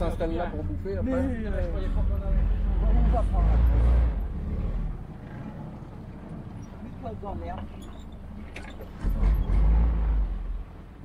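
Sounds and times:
jeep engine rumbling: 0.0s - 11.0s.

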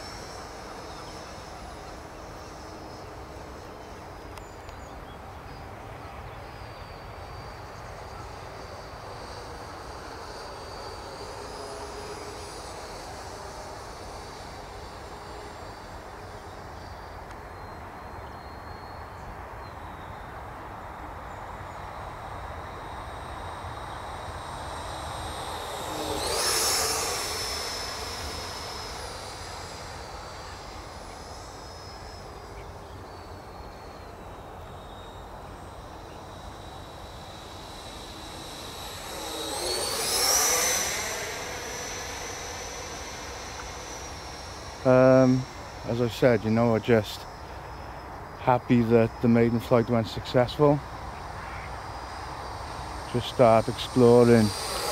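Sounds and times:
model jet fan whine fly-by: 0.0s - 54.9s.

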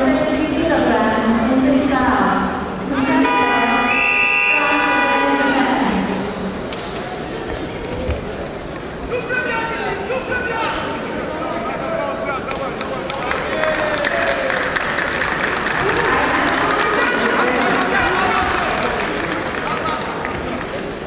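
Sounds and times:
arena crowd shouting: 2.9s - 6.1s.

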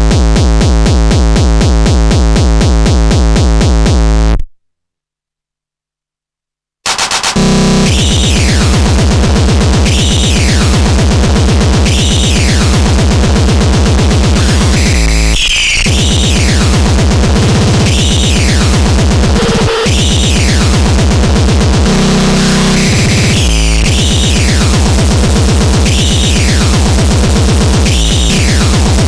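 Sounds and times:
fast distorted kick drum: 0.0s - 4.2s, 6.9s - 29.0s.

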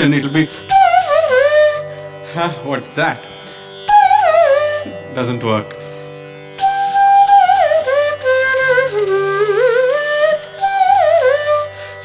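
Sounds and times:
slide flute playing: 0.6s - 2.6s, 3.9s - 5.4s, 6.6s - 12.0s.

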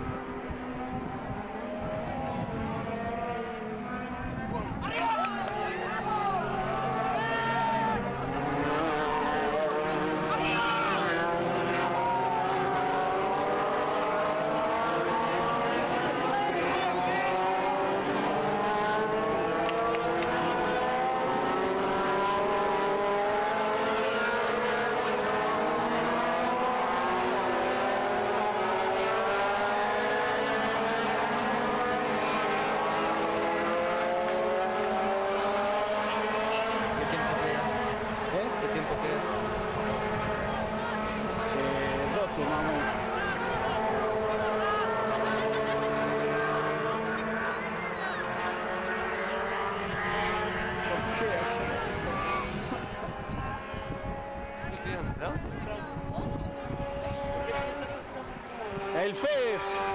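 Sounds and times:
motor running rising pitch: 36.6s - 49.7s.

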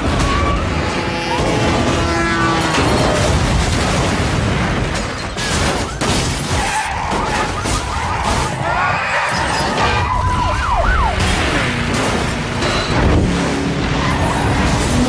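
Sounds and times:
car engine: 0.0s - 4.9s, 9.6s - 15.0s
constant rumble: 0.0s - 15.0s
crashes of falling concrete: 2.7s - 8.7s.

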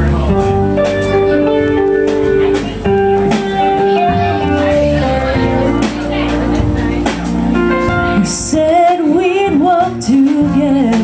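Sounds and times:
live band playing slow song: 0.0s - 11.0s.

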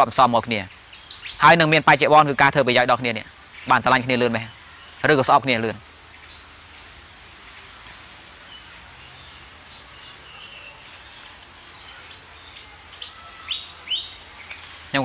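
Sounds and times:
small birds chirping: 0.0s - 15.0s
steady outdoor hiss: 0.0s - 15.0s.

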